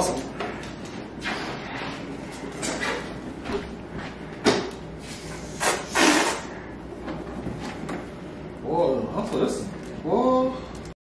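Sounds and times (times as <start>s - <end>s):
balloon rubbing and handling: 5.0s - 6.6s
breath blowing into balloon: 5.0s - 6.7s.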